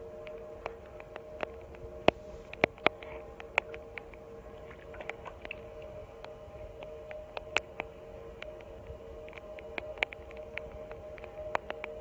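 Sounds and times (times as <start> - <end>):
steady two-note hum: 0.0 - 12.0.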